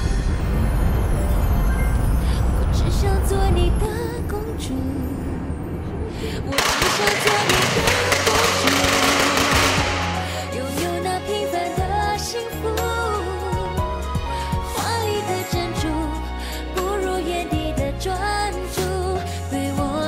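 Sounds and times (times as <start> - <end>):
background music: 0.0 - 20.0
firecrackers crackling: 6.6 - 10.5.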